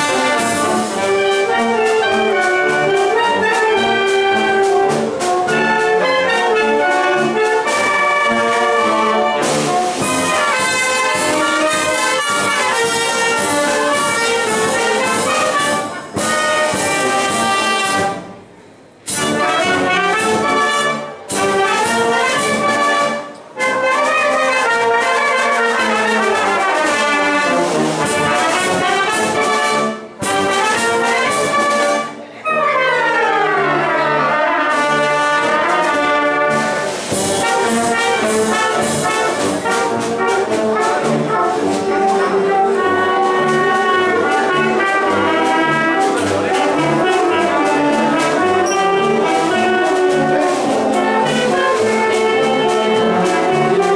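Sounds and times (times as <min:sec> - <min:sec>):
cymbals: 0:00.0 - 0:53.9
wind band playing: 0:00.0 - 0:53.9.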